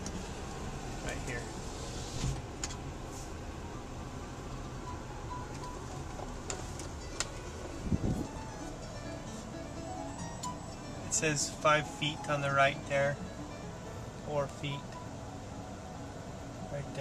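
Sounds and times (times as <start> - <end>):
car engine and road rumble: 0.0 - 17.0
faint music: 3.2 - 17.0.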